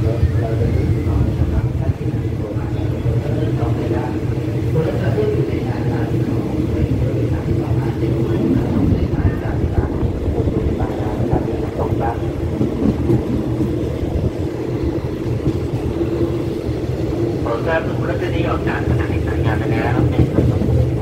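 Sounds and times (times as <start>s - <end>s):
train wheels rumbling on rail: 0.0s - 21.0s
steady low hum: 1.1s - 12.7s.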